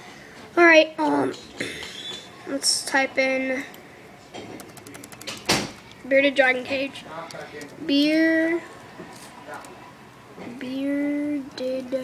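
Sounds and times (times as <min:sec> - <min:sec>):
laptop key clicks: 0:04.6 - 0:06.0.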